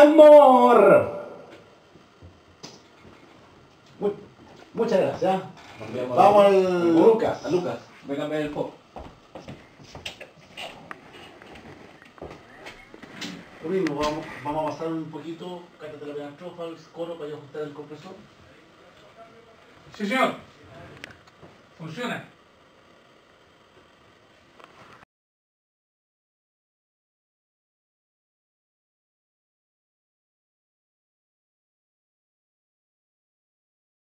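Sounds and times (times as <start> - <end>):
faint room hiss: 0.0 - 25.0
soft footsteps: 7.9 - 14.7.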